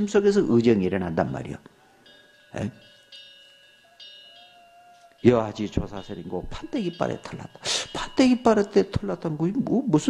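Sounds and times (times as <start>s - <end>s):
faint metallic chime: 0.0s - 10.0s.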